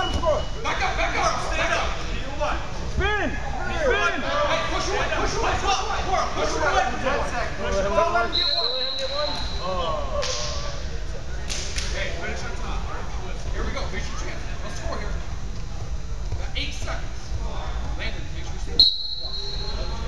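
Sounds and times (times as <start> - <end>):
whistle blast: 8.3 - 9.7, 18.8 - 20.0.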